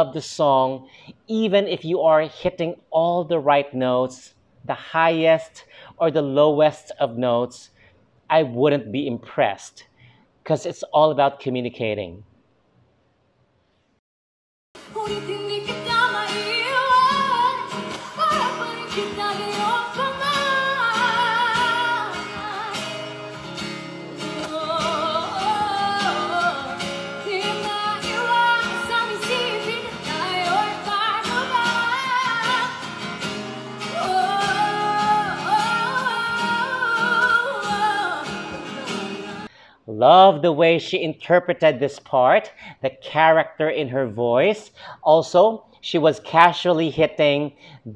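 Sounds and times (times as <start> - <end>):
woman singing pop song: 14.8 - 39.5
acoustic guitar: 14.8 - 39.7.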